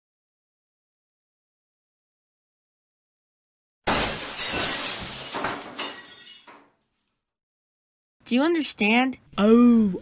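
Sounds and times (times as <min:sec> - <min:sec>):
pieces clattering and scattering: 0:03.9 - 0:07.2.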